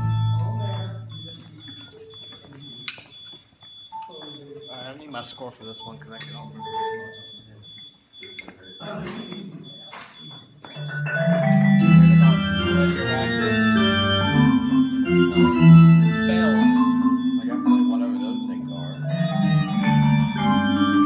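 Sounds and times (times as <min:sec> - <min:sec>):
low keyboard chord: 0:00.0 - 0:00.8, 0:11.0 - 0:21.0
high-pitched electronic beep: 0:00.0 - 0:21.0
faint background talking: 0:00.2 - 0:19.5.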